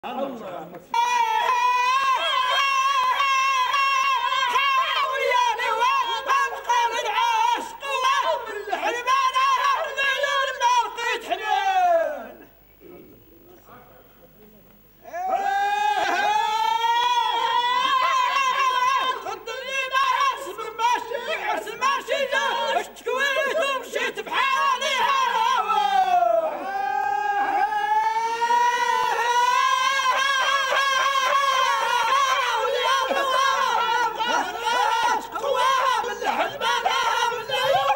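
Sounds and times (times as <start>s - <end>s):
men singing a long high note: 0.9s - 12.5s, 15.0s - 37.9s.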